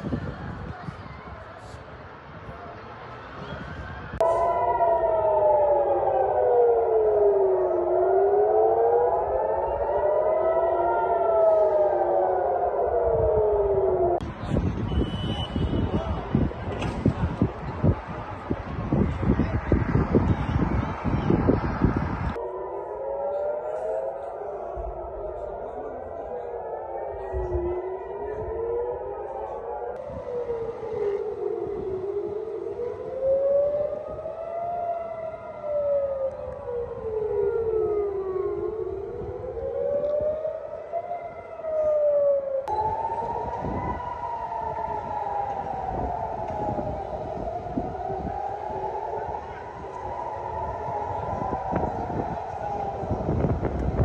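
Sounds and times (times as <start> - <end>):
air-raid sirens wailing: 0.0 - 54.0.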